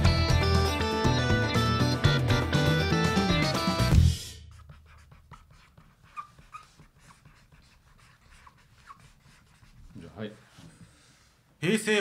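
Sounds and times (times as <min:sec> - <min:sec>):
pens scratching on paper: 0:04.5 - 0:10.2
pen tip squeaks: 0:04.9 - 0:07.2.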